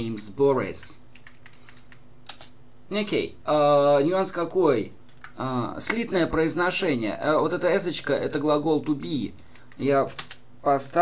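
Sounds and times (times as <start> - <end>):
faint steady hum: 0.0 - 11.0
keyboard typing clicks: 1.2 - 2.5, 9.4 - 10.4.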